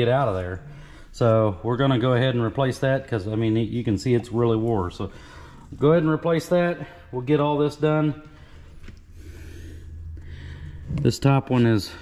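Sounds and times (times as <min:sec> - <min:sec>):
steady low hum: 0:00.0 - 0:12.0
man breathing close to microphone: 0:00.6 - 0:01.2, 0:05.1 - 0:05.8, 0:08.2 - 0:11.0.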